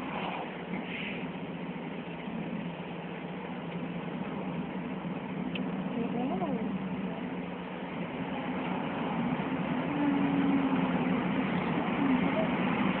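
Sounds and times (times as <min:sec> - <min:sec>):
road and engine noise inside vehicle: 0:00.0 - 0:13.0.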